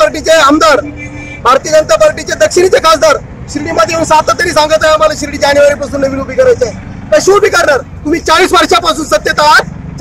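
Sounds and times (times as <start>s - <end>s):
man speaking into a microphone: 0.0s - 9.8s
low hum of street noise: 0.0s - 10.0s.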